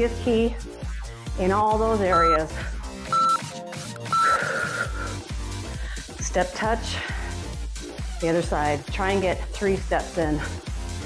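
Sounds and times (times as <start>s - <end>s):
workout music with steady beat: 0.0s - 11.0s
timer countdown beep: 2.1s - 5.0s.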